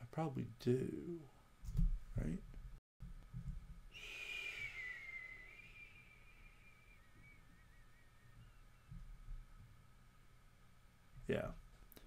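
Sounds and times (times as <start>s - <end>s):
breathy hiss: 4.0s - 7.0s
person whistling: 4.0s - 9.0s.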